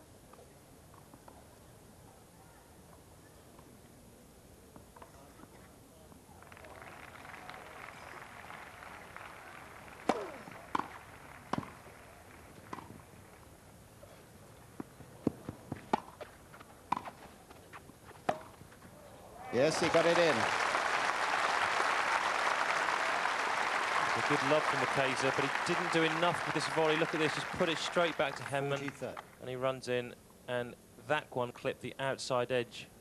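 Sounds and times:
rackets striking tennis ball: 10.0s - 11.8s, 12.6s - 13.0s, 14.8s - 18.6s.

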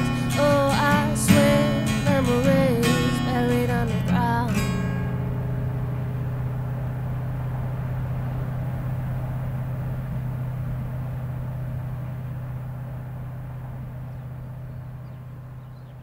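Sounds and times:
car engine and road drone: 0.0s - 16.0s.

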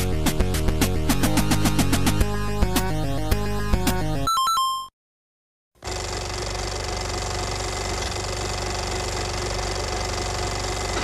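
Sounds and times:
film projector clatter: 5.8s - 11.0s.

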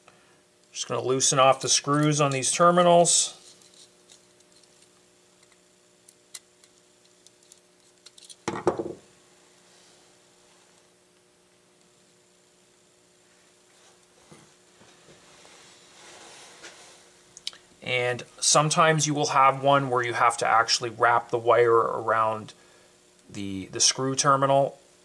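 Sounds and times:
faint hum: 0.0s - 25.0s.

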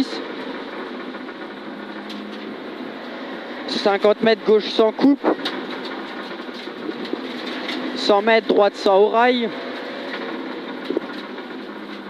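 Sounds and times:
rally car engine at speed: 0.0s - 12.0s
tyre noise on wet road: 0.0s - 12.0s.

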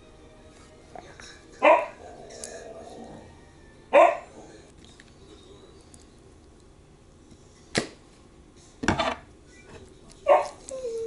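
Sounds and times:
dog barking: 1.6s - 2.0s, 3.9s - 4.3s, 10.3s - 10.6s.

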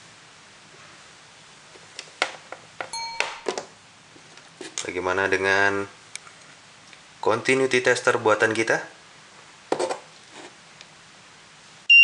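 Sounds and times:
electronic ding chime: 2.9s - 3.6s.

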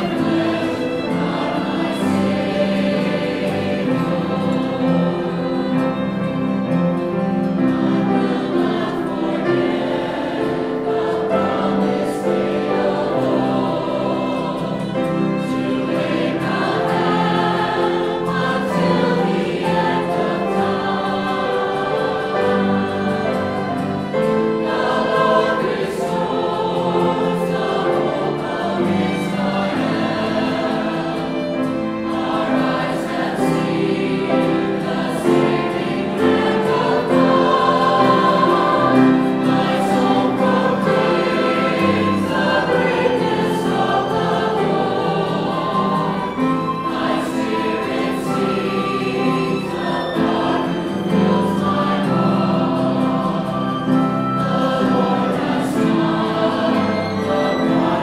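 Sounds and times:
mixed choir singing: 0.0s - 58.0s
piano: 0.0s - 58.0s.

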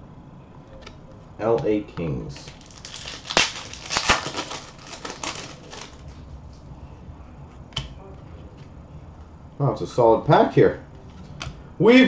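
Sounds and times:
trading cards rustling: 2.4s - 6.2s.

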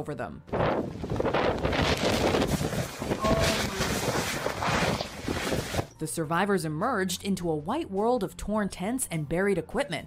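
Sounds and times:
gusting rush of wind and snow: 0.5s - 5.9s
wind buffeting microphone: 0.5s - 5.9s.

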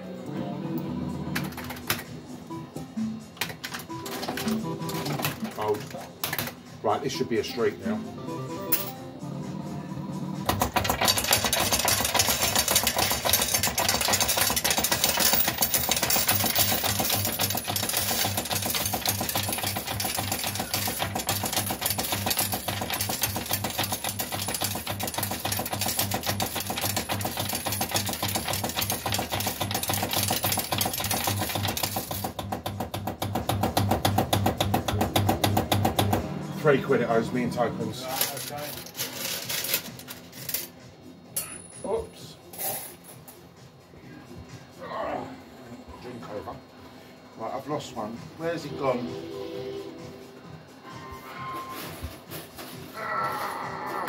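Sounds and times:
tokens clattering into payout tray: 3.4s - 6.6s, 8.7s - 9.0s, 10.5s - 32.6s, 38.0s - 40.8s.

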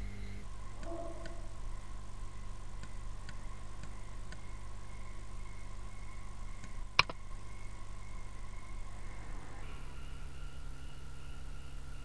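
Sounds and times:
low electrical hum: 0.0s - 12.0s
computer mouse click: 6.6s - 7.2s.

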